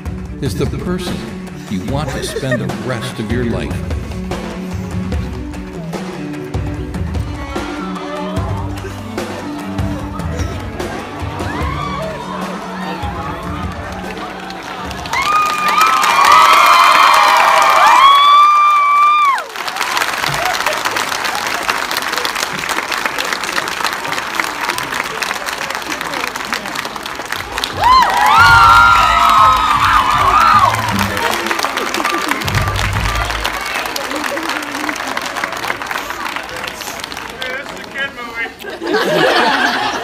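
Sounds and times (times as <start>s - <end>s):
audience shrieks and whoops: 11.2s - 20.9s, 27.6s - 34.0s
audience clapping: 12.3s - 40.0s.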